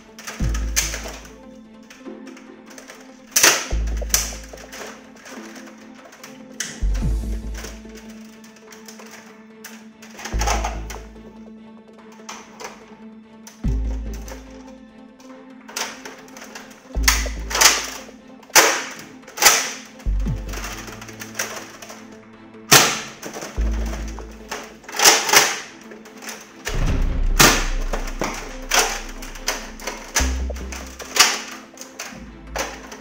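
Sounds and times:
plastic toy parts clicking: 0.0s - 11.2s, 12.1s - 12.9s, 13.5s - 14.6s, 15.2s - 33.0s
music with bass beat: 3.8s - 4.6s, 6.8s - 7.8s, 13.7s - 14.3s, 17.0s - 17.6s, 20.1s - 20.7s, 26.8s - 31.0s.

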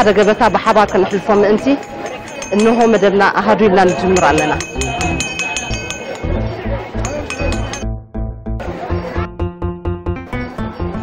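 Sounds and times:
rhythmic metallic jingling: 0.0s - 7.9s
crowd voices: 0.0s - 11.0s
plucked-string music: 3.8s - 11.0s.

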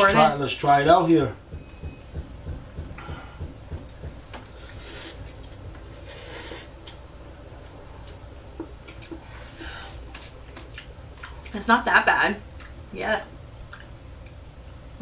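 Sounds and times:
noodle slurping: 4.6s - 7.0s.

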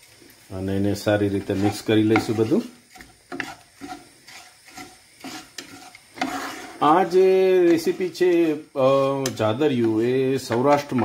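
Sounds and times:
light sizzle: 0.0s - 11.0s
wooden spatula scraping pan: 1.2s - 11.0s.

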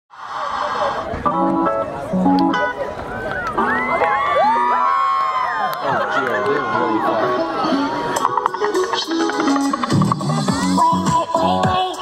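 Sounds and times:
crowd cheering and screaming: 3.0s - 8.3s.

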